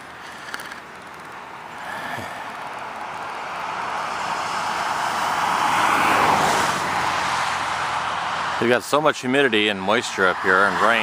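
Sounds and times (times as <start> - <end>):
car passing: 0.0 - 11.0.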